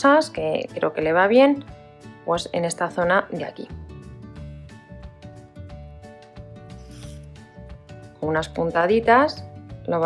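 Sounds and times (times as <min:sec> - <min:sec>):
soft background music: 0:00.0 - 0:10.0
thread drawn through fabric: 0:06.7 - 0:07.5.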